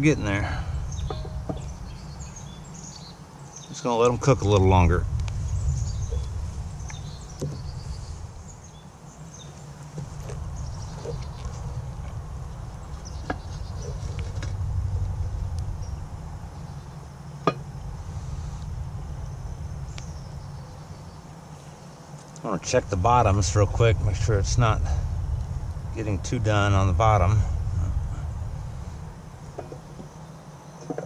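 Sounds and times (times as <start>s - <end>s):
low rumble: 0.0s - 3.0s, 4.0s - 21.4s, 22.6s - 30.3s.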